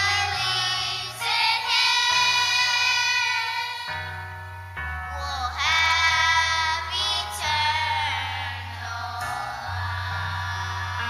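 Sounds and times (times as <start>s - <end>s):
children's choir singing: 0.0s - 4.3s, 5.1s - 11.0s
steady bass line: 0.0s - 11.0s.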